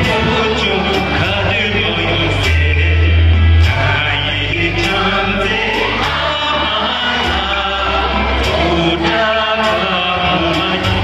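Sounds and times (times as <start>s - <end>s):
instrumental backing track: 0.0s - 11.0s
man singing into a microphone: 0.0s - 11.0s.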